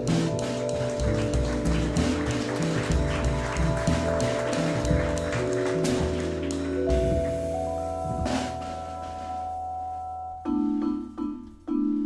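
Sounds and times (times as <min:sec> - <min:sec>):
drum kit with cymbals: 0:00.0 - 0:10.0
upright double bass: 0:00.0 - 0:11.2
vibraphone struck with mallets: 0:00.0 - 0:12.0.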